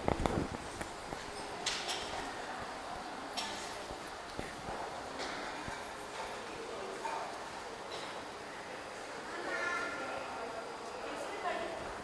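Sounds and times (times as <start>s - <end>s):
indoor room ambience: 0.0s - 12.0s
faint indistinct voices: 1.0s - 12.0s.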